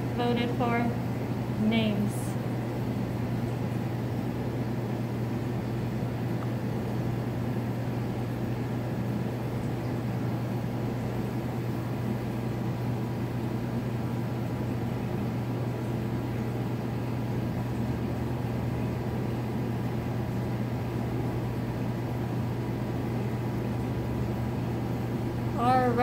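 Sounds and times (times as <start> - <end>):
constant wash of noise: 0.0 - 4.1
low mechanical hum: 0.0 - 26.0.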